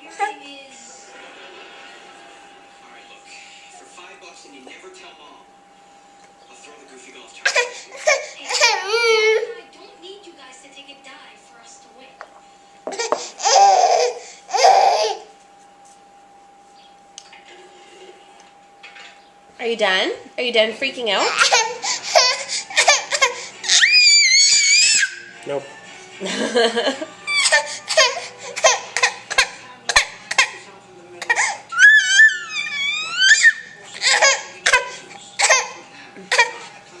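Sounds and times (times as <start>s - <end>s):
baby wailing: 7.5s - 9.5s, 12.9s - 15.3s, 21.2s - 25.3s, 27.3s - 29.4s, 31.3s - 36.6s.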